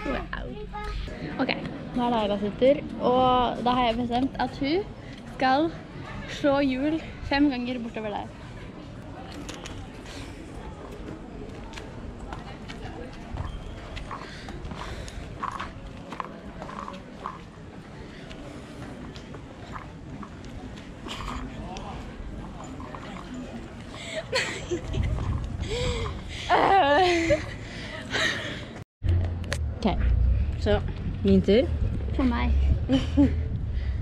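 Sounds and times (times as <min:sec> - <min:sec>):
girl speaking: 0:00.0 - 0:01.2, 0:32.2 - 0:32.7
murmur of distant voices: 0:00.0 - 0:28.8
footsteps on paving stones: 0:09.9 - 0:26.8
low rumble: 0:29.0 - 0:34.0.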